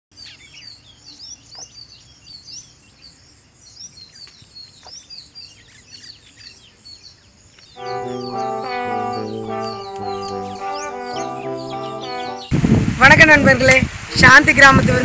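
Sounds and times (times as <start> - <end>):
small birds chirping: 0.1 - 12.5
music: 7.8 - 12.5.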